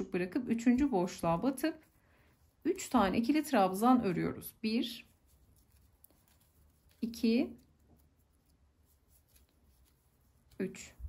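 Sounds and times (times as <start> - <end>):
soft rustling of yarn: 0.0 - 11.0.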